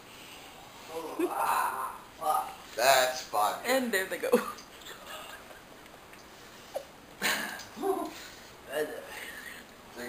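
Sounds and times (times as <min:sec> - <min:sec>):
rising yelp-like vocal sound: 0:00.8 - 0:02.6.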